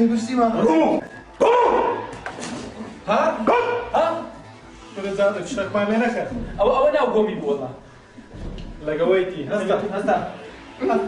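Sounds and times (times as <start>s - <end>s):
dog barking: 1.4s - 2.1s, 3.4s - 4.0s.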